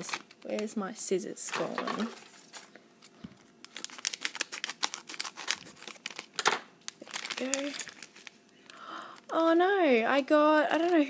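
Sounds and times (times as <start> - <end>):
plastic packet crinkling: 0.0 - 0.8, 1.5 - 9.4, 10.6 - 11.0.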